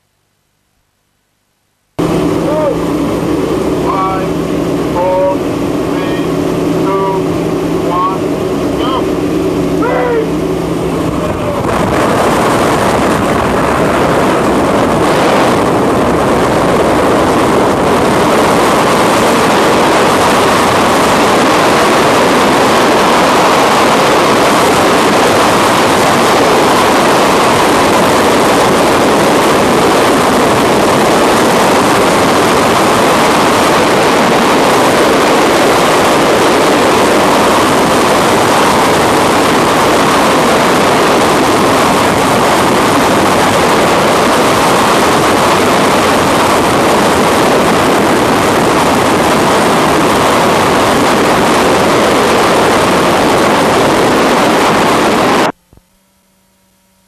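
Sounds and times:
wind rushing past microphone: 2.0 - 55.6.

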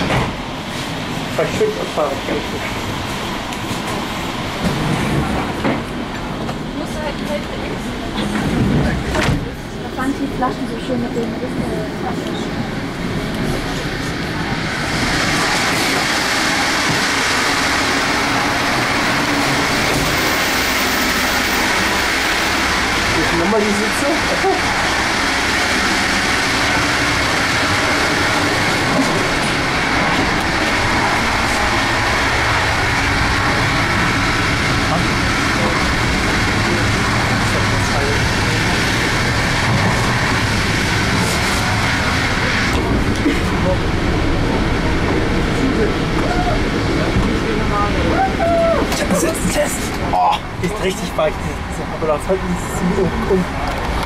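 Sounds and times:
train carriage running noise: 0.0 - 54.0.

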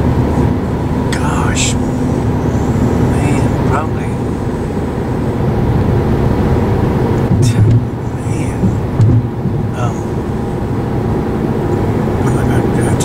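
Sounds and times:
car road and engine noise: 0.0 - 13.0.

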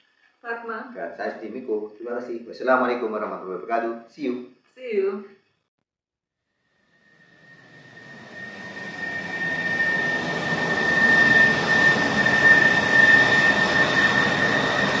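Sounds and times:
jet airliner engines whining: 6.8 - 15.0.

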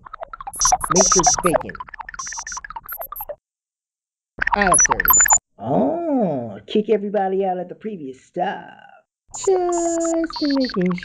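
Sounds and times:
electronic beeping: 0.5 - 3.4, 4.4 - 5.4, 9.3 - 11.0.

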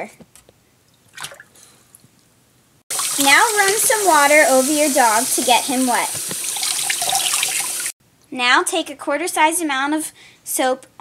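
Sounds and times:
water splashing in a sink: 1.1 - 1.5, 2.9 - 7.9
tap running: 5.3 - 7.9.

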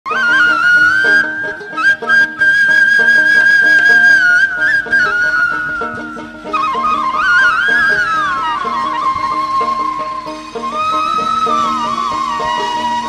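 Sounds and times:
flute-like melody: 0.1 - 13.0.

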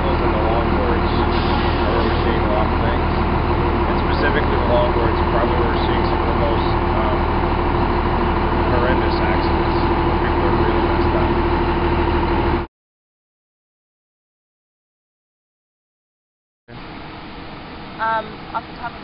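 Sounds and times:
fire engine idling: 0.0 - 12.7.

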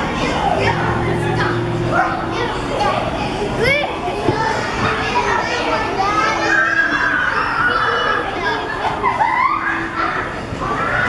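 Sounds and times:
children playing and calling out: 0.0 - 11.0.

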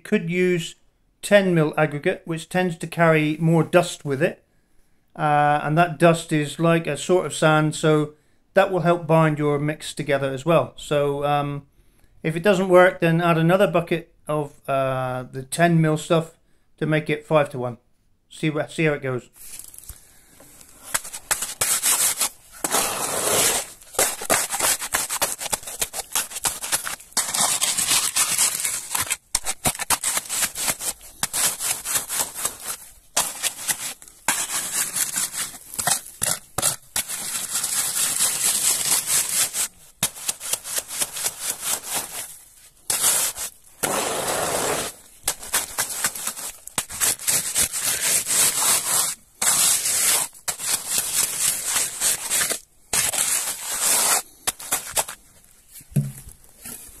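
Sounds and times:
hand float scraping concrete: 20.7 - 42.3, 42.9 - 55.2.

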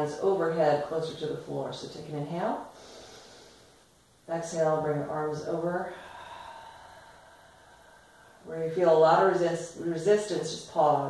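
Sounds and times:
low room noise: 0.0 - 11.0
breathy exhalation: 2.7 - 3.9, 5.8 - 8.5.

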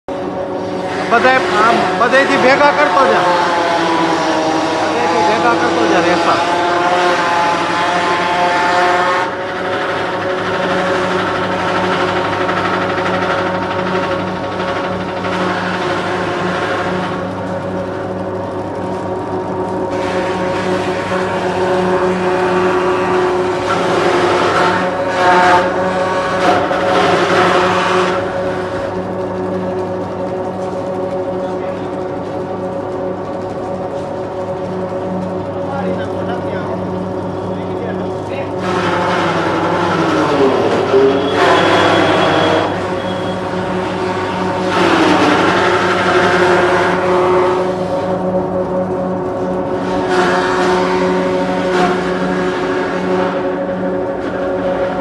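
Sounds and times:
machines motor hum: 0.1 - 55.0
spinning drum rasping: 0.4 - 55.0.

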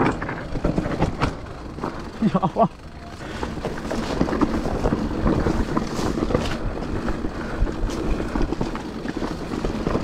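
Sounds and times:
bike rattling over rough ground: 0.0 - 10.0
bike tyre rumble: 0.0 - 10.0.

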